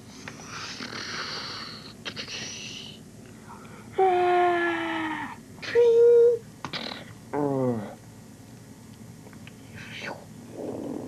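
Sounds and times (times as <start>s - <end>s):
person whispered hiss: 0.2s - 3.0s, 9.6s - 11.0s.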